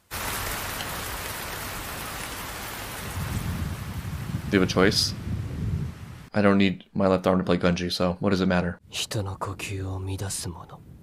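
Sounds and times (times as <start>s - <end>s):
rain on a hard surface: 0.0s - 6.3s.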